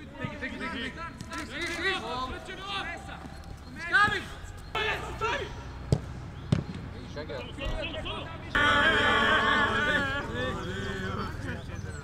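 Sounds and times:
people shouting to one another: 0:08.6 - 0:10.4.

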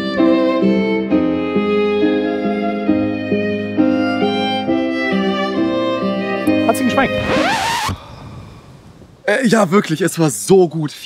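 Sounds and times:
background music: 0:00.0 - 0:08.0
whoosh with gliding tone: 0:06.5 - 0:09.2
faint background hiss: 0:07.9 - 0:11.0.

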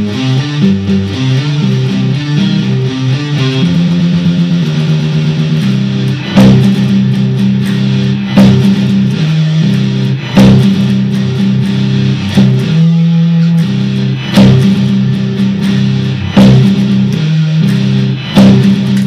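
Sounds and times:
distorted electric guitar chords: 0:00.0 - 0:19.0.

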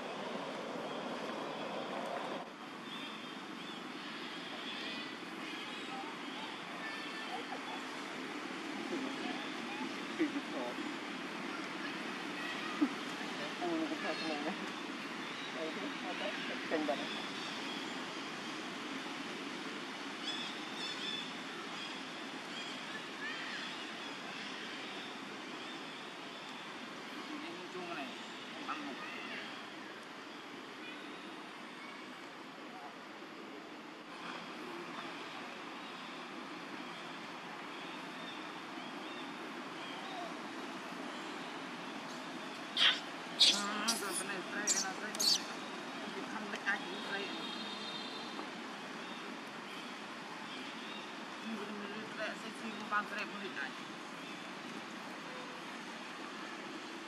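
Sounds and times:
steady outdoor background noise: 0:00.0 - 0:57.0.

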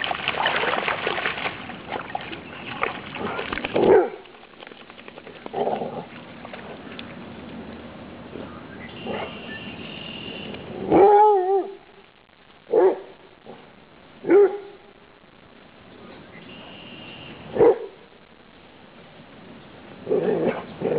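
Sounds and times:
dog barking: 0:03.8 - 0:04.2, 0:09.0 - 0:09.4, 0:12.7 - 0:13.1, 0:14.2 - 0:14.8, 0:17.6 - 0:18.0.

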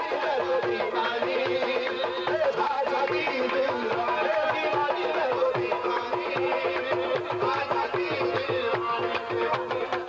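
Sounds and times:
hand drum beat: 0:00.0 - 0:10.0.

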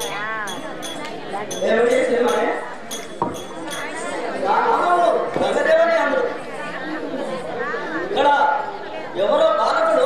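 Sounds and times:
overlapping voices chatting: 0:00.0 - 0:10.0.

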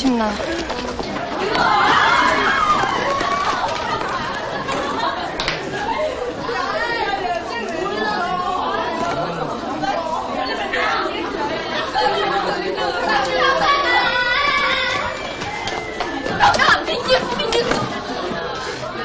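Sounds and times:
babble of overlapping voices: 0:00.0 - 0:19.0.

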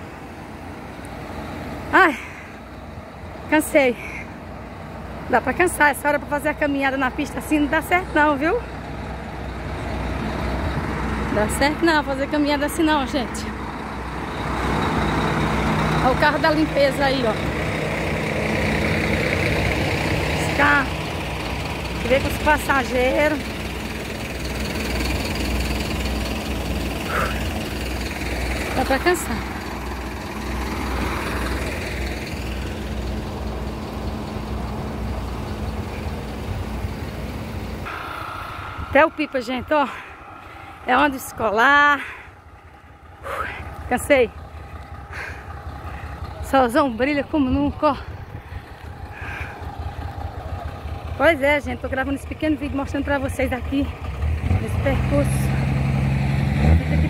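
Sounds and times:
garbage truck diesel engine: 0:00.0 - 0:57.0
low roadside rumble: 0:00.0 - 0:57.0
woman speaking: 0:01.9 - 0:02.4, 0:03.5 - 0:04.2, 0:05.3 - 0:08.7, 0:11.3 - 0:13.6, 0:16.0 - 0:17.5, 0:20.3 - 0:21.0, 0:22.0 - 0:23.5, 0:28.7 - 0:29.5, 0:38.0 - 0:42.2, 0:43.3 - 0:44.4, 0:46.4 - 0:48.1, 0:51.2 - 0:53.9, 0:54.6 - 0:55.7.

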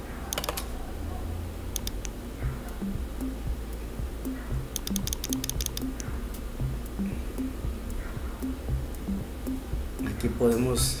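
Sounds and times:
background music low notes: 0:00.0 - 0:11.0
computer mouse clicks: 0:00.3 - 0:00.8, 0:01.7 - 0:02.2, 0:04.3 - 0:06.4.

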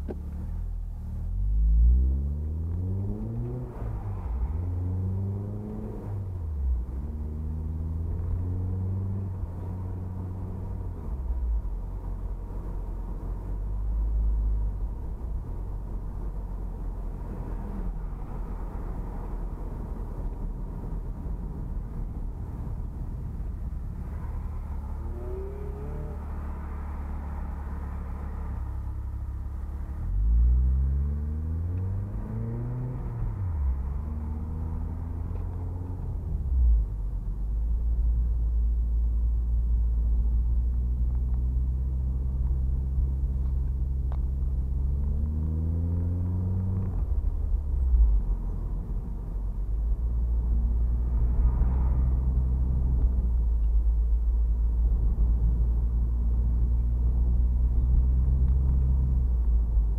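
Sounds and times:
car engine accelerating: 0:00.0 - 0:59.9
low road rumble: 0:00.0 - 0:59.9.

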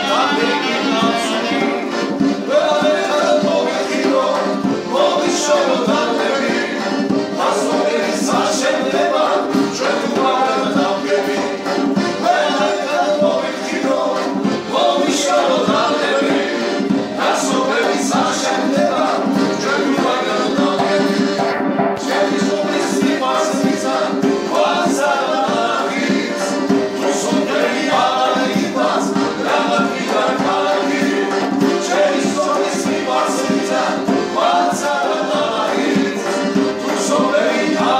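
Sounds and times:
accordion: 0:00.0 - 0:37.9
acoustic guitar: 0:00.0 - 0:37.9
men singing together: 0:00.0 - 0:37.9.

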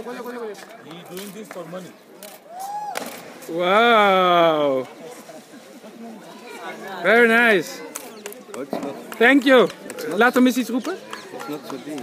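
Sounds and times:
background chatter of people: 0:00.0 - 0:12.0.

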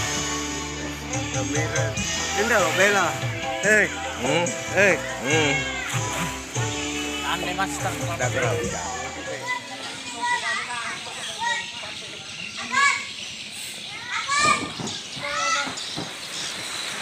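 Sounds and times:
children calling and shouting: 0:00.0 - 0:16.3
background chatter: 0:01.0 - 0:16.2.

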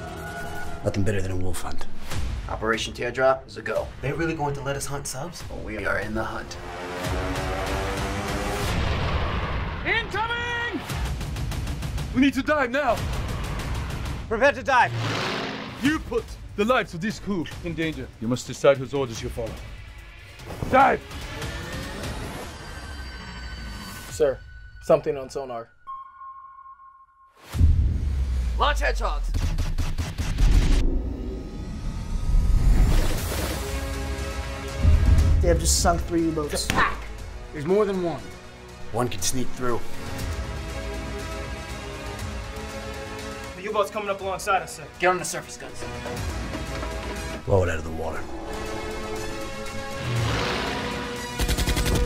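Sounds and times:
orchestral music: 0:03.9 - 0:25.3, 0:33.2 - 0:52.0
rapid gunfire volley: 0:51.4 - 0:52.0.

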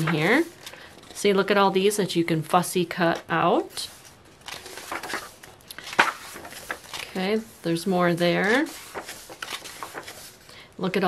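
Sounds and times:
book pages turning: 0:03.8 - 0:10.5.

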